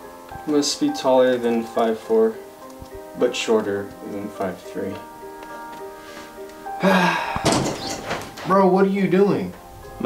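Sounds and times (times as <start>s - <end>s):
quiet background music: 0.0s - 10.0s
door thud: 7.4s - 8.6s.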